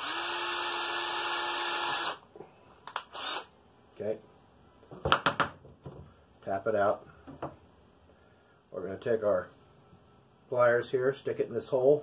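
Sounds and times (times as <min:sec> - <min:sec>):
cordless drill drilling metal: 0:00.0 - 0:02.2, 0:03.0 - 0:03.5.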